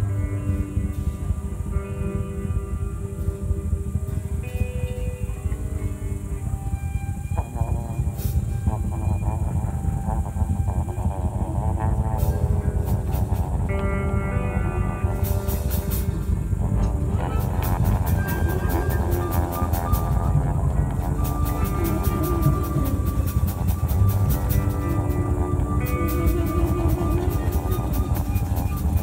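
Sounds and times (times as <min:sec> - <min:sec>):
ambient music with layered tones: 0:00.0 - 0:29.0
low drone: 0:00.0 - 0:29.0
wavering warbling tones: 0:00.2 - 0:29.0.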